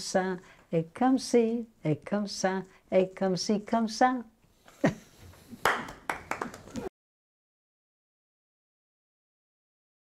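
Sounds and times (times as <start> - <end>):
hands clapping: 5.6 - 6.9.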